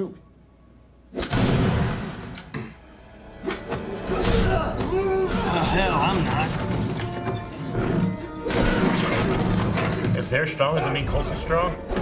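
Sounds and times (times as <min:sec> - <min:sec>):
sharp fight hits: 0:01.1 - 0:02.3.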